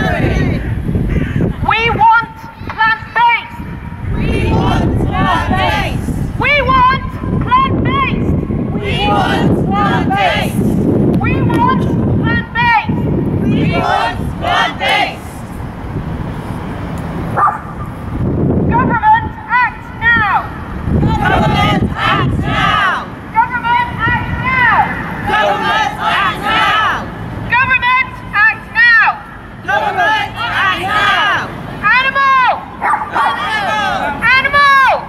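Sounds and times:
woman shouting through a megaphone: 0.0 - 0.7, 1.6 - 15.4, 18.6 - 35.0
steady outdoor rumble: 0.0 - 35.0.

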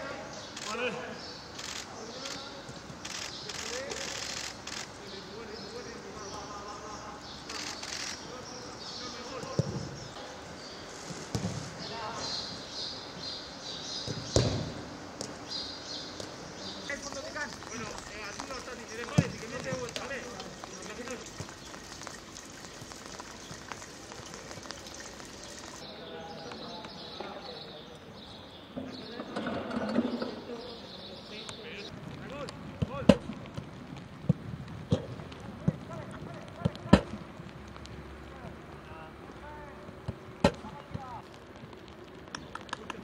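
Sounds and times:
football kick thuds: 11.3 - 11.7, 14.1 - 15.3, 19.1 - 19.9.

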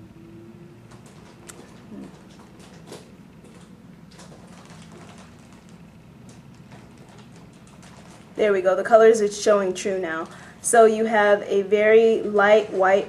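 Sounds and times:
low steady room hum: 0.0 - 13.0.

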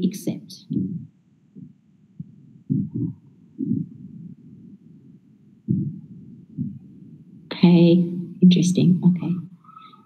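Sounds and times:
soft muffled low thumps: 0.6 - 9.3.

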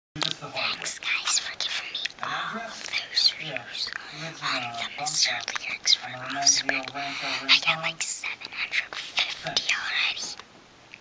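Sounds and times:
boy whispering: 0.3 - 10.4.

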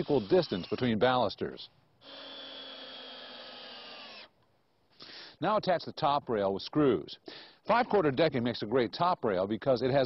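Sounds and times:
cordless drill drilling into wood: 0.0 - 1.1, 2.0 - 4.3.

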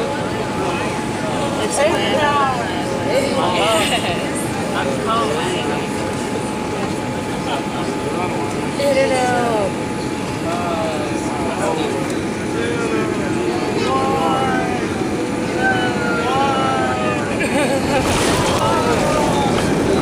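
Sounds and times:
voices: 0.0 - 20.0
airliner cabin rumble: 9.7 - 20.0.

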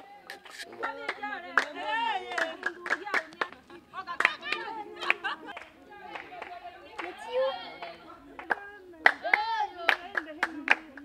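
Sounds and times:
voices singing or chanting: 0.0 - 11.0
hand claps: 0.3 - 3.6, 4.2 - 11.0.

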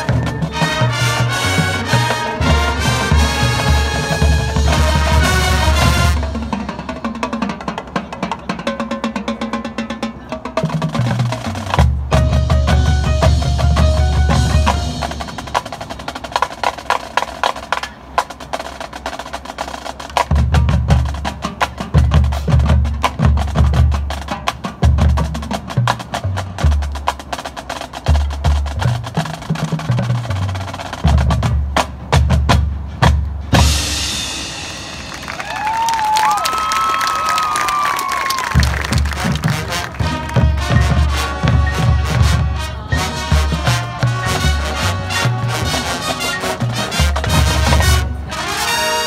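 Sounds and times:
snare drum rolls: 0.0 - 9.6, 10.5 - 49.0.

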